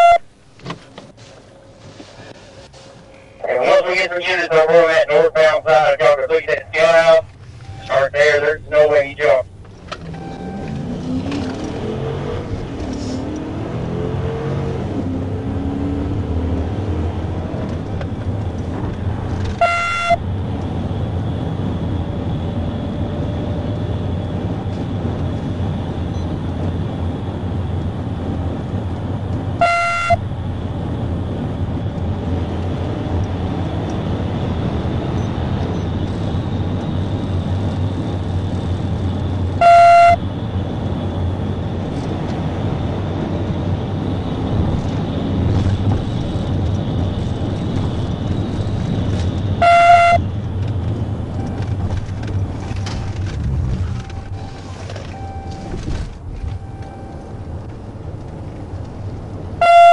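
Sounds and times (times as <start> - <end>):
short horn-like beep: 0.0 - 0.3, 7.5 - 8.1, 10.1 - 10.8, 19.6 - 20.3, 29.6 - 30.3, 39.6 - 40.2, 49.6 - 50.3, 54.0 - 55.8, 56.5 - 57.3, 59.6 - 59.9
car engine revving: 3.2 - 59.9
tyre and wind noise: 40.2 - 59.5.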